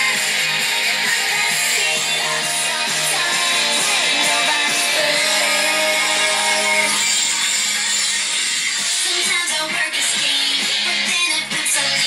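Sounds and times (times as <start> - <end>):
pop-rock song with guitar: 0.0 - 12.0.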